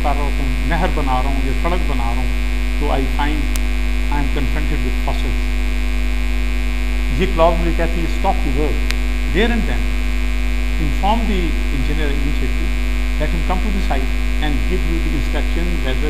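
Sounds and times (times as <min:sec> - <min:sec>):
loud electrical mains hum: 0:00.0 - 0:16.0
faint speech: 0:02.8 - 0:03.4.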